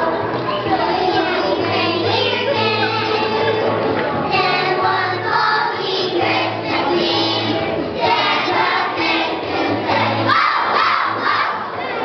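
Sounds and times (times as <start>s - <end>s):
children singing: 0.0s - 12.0s
musical accompaniment: 0.0s - 12.0s
children shouting together: 10.1s - 12.0s.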